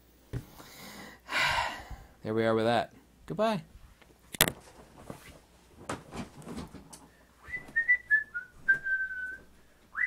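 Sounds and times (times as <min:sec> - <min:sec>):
knocks and rustles of movement: 0:03.8 - 0:09.6
person whistling a tune: 0:07.4 - 0:10.0.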